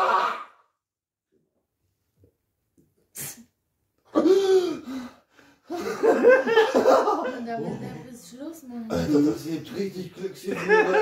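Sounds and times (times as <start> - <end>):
sharp sniff-like breath: 3.1 - 3.6.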